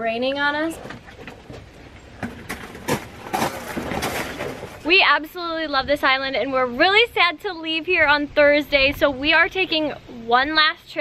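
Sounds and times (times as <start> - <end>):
bicycle knocks and rattles: 0.9 - 4.8
bicycle tyres crunching on gravel: 1.9 - 5.0.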